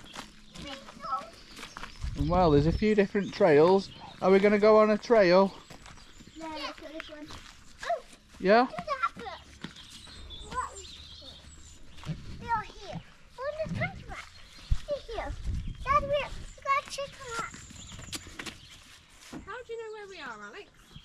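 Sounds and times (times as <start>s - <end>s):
wind rumble on microphone: 1.9s - 2.9s, 13.6s - 16.6s
young children chattering: 8.8s - 11.6s.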